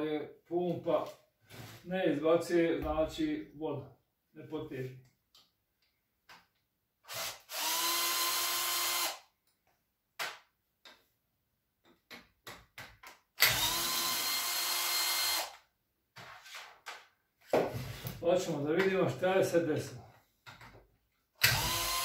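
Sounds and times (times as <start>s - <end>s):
cordless drill driving screws: 7.1s - 9.2s, 13.4s - 15.6s, 21.4s - 22.0s.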